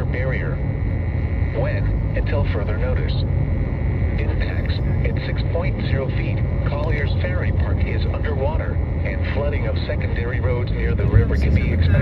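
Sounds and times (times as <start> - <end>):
synthesized voice reading: 0.0 - 0.6, 1.5 - 3.3, 4.1 - 12.0
steady low rumble: 0.0 - 12.0.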